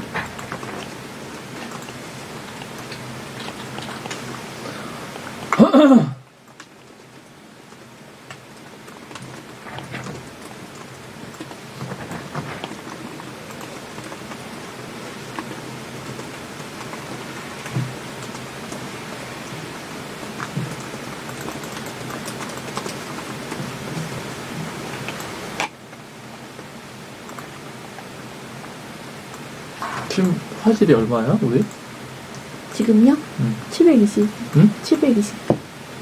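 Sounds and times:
rain-like hiss: 0:00.0 - 0:36.0.

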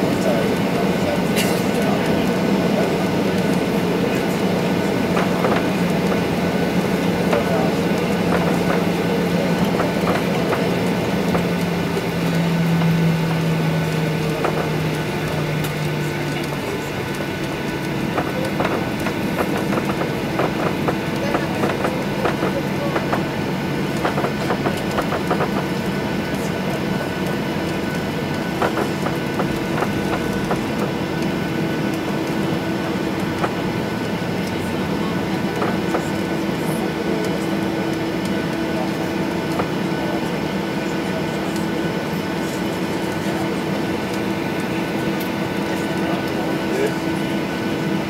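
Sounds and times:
jet engines humming: 0:00.0 - 0:48.0
wheels knocking and rattling: 0:05.1 - 0:34.7.

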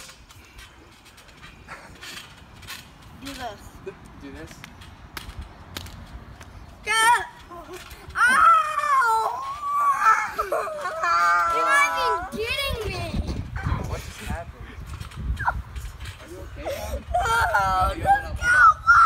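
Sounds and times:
boy yelling and shrieking: 0:06.8 - 0:13.2, 0:16.6 - 0:19.0.

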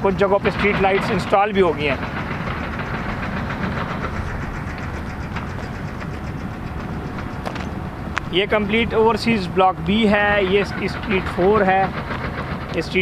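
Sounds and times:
construction machinery engine rumble: 0:00.0 - 0:13.0
fast even ticking: 0:00.5 - 0:10.5.

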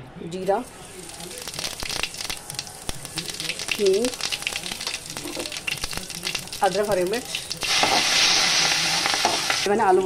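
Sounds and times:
seeds sizzling in hot oil: 0:00.6 - 0:09.7.

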